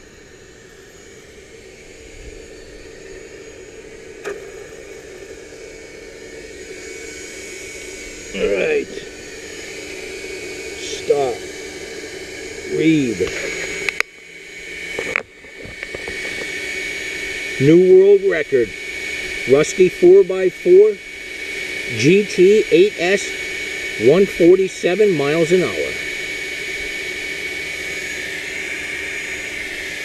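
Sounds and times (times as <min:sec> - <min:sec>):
mechanical drone with high whine: 0:00.0 - 0:30.0.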